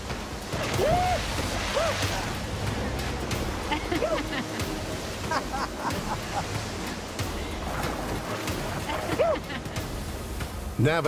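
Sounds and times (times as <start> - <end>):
whitewater rushing: 0.0 - 11.0
people whooping and laughing: 0.7 - 2.4, 3.8 - 4.5, 8.9 - 9.6.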